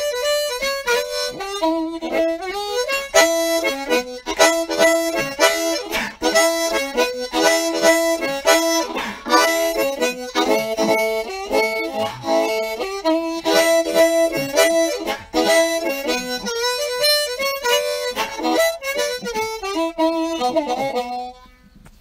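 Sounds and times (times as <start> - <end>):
harmonica playing blues: 0.0 - 21.6.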